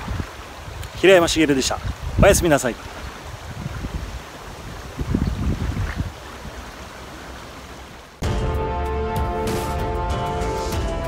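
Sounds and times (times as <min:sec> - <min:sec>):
wind buffeting microphone: 0:00.0 - 0:06.9
river rushing: 0:00.0 - 0:08.2.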